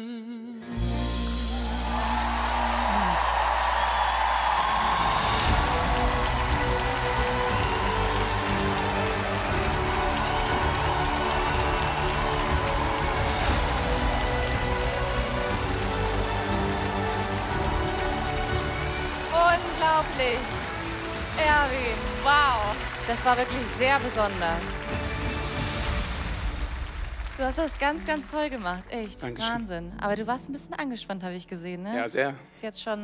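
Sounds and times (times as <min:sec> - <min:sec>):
background music: 0:00.0 - 0:33.0
audience applauding and cheering: 0:01.1 - 0:29.6.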